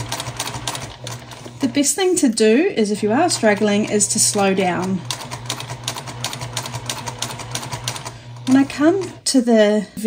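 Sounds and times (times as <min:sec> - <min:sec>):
sewing machine running: 0:00.0 - 0:09.3.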